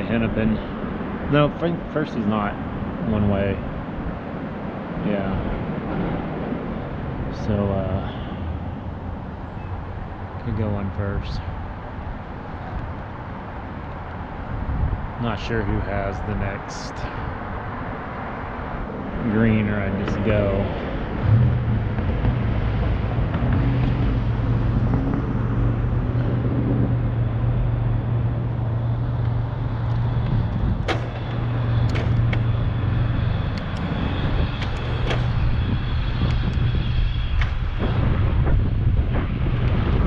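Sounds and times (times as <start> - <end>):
low engine hum: 0.0 - 40.0
road noise: 0.0 - 40.0
wind buffeting microphone: 0.0 - 40.0.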